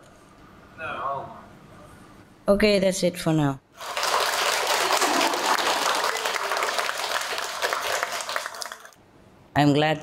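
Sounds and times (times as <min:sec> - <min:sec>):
audience applauding: 0:03.8 - 0:09.0.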